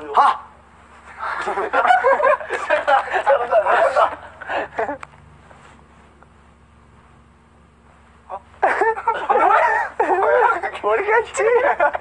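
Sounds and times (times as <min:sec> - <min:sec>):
young men laughing: 0:01.1 - 0:05.2, 0:08.3 - 0:12.0
young men chattering: 0:01.2 - 0:05.1, 0:08.2 - 0:12.0.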